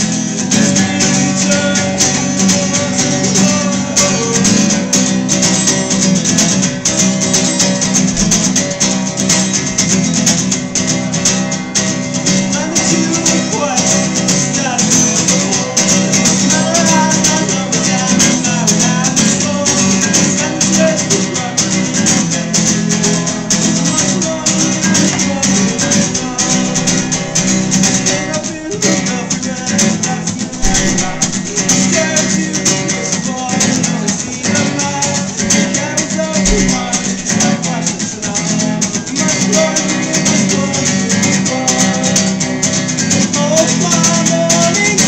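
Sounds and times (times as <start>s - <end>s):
acoustic guitar strumming: 0.0s - 45.0s.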